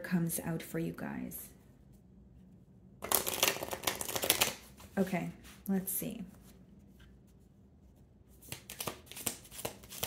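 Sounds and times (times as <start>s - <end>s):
cards being shuffled: 3.0s - 5.1s, 8.4s - 10.0s.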